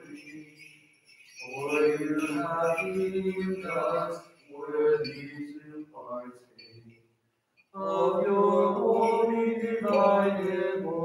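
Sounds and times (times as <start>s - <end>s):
men chanting long held notes: 1.5s - 6.2s, 7.8s - 11.0s.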